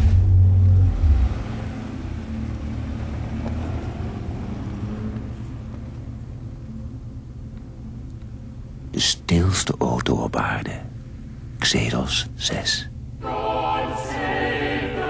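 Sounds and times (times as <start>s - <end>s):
car engine rumbling: 0.0s - 13.3s.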